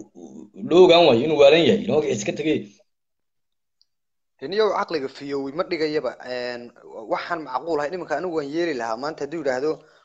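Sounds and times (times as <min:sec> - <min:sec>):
man talking: 0:00.0 - 0:02.8, 0:04.4 - 0:10.0.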